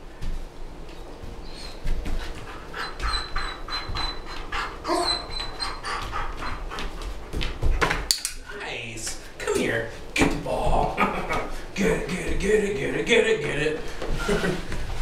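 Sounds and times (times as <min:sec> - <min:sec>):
dog panting rapidly: 0:01.6 - 0:08.0.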